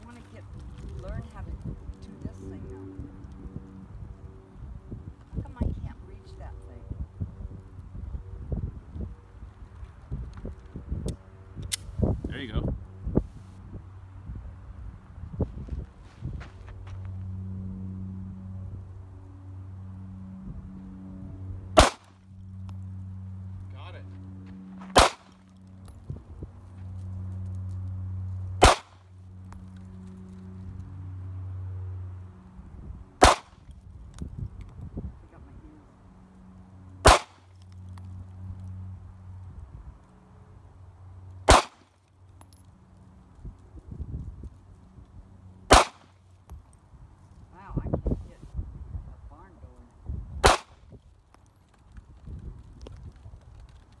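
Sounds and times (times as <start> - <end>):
steady low hum: 0.0 - 54.0
handgun shots: 21.8 - 22.1, 24.9 - 25.4, 28.6 - 29.0, 33.2 - 33.6, 37.0 - 37.4, 41.5 - 41.8, 45.7 - 46.1, 50.4 - 50.8.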